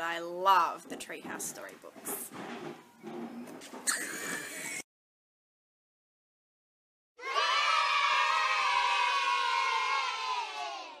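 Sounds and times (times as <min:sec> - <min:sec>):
children cheering and shouting: 0:07.2 - 0:11.0.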